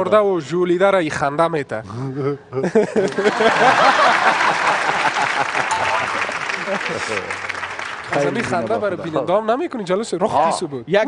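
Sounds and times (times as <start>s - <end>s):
studio audience applauding: 3.1s - 9.1s.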